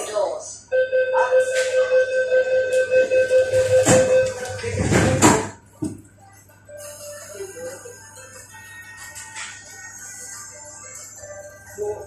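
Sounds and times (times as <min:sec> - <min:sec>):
rapidly pulsing electronic beep: 0:00.7 - 0:05.2.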